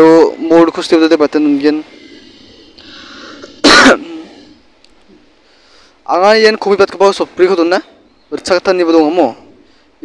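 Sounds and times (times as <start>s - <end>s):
faint background hiss: 0.0s - 10.0s
person's cough-like breath burst: 3.4s - 4.5s.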